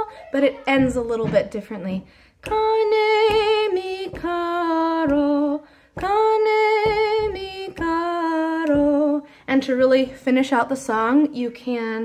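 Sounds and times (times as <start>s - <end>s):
woman singing folk song: 0.0s - 12.0s.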